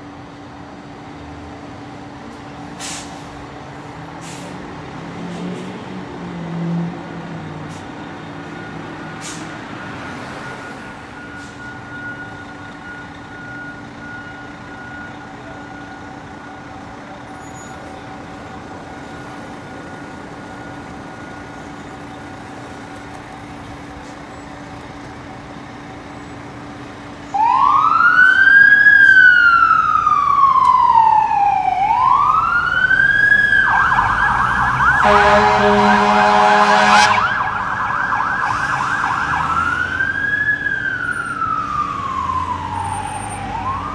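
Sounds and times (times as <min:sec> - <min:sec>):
traffic hum: 0:00.0 - 0:43.9
fire engine siren wailing: 0:03.7 - 0:24.7, 0:25.8 - 0:43.9
deep horn blast: 0:34.6 - 0:37.6.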